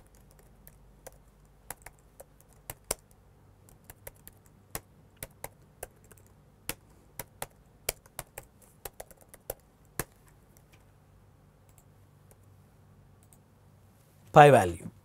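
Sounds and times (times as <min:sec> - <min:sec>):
typing on computer keyboard: 0:00.0 - 0:10.7.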